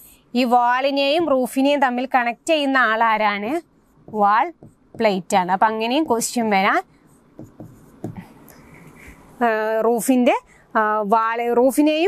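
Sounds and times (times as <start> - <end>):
stylus scratching on screen: 2.1 - 9.5
stylus tapping on screen: 3.9 - 6.5, 7.2 - 8.6.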